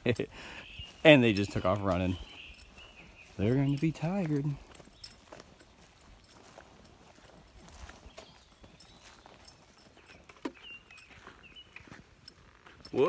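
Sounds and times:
footsteps on dirt trail: 0.0s - 13.0s.

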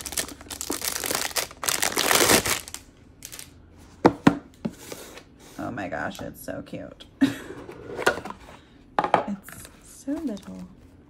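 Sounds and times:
plastic wrap crinkling and tearing: 0.0s - 3.5s.

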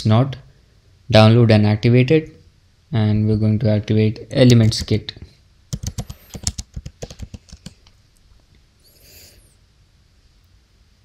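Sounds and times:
typing on computer keyboard: 4.5s - 5.0s, 5.7s - 7.8s.

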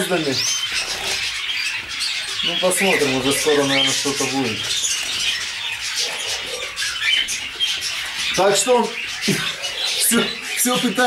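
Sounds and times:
cage birds chirping and twittering: 0.0s - 11.0s.

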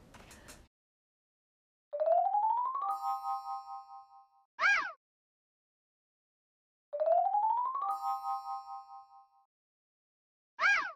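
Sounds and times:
bell-like chime: 2.8s - 4.4s, 7.8s - 9.5s.

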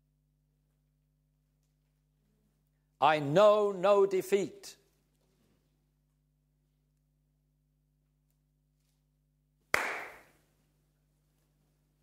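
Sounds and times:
hand slap: 9.7s - 10.4s.

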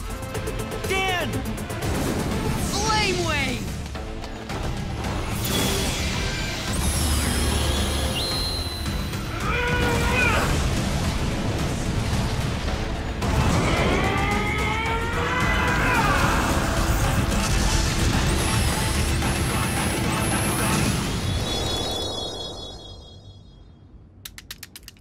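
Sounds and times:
dramatic music: 0.0s - 22.9s
action sound effects: 0.3s - 24.2s.

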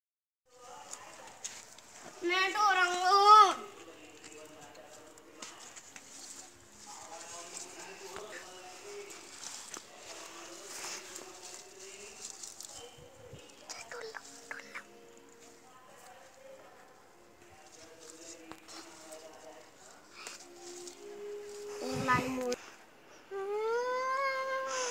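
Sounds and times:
plant leaves rustling: 0.5s - 22.8s
faint voices talking: 0.5s - 24.9s.

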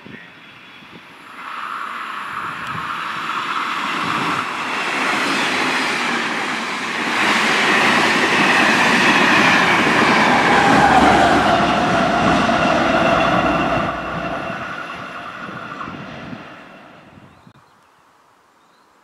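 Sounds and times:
diesel locomotive passing: 0.1s - 17.3s
train coaches and wheels rushing: 0.1s - 17.3s.

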